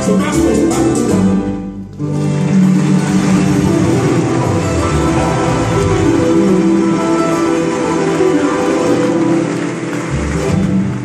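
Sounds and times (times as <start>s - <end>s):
live band playing closing chords: 0.0s - 11.0s.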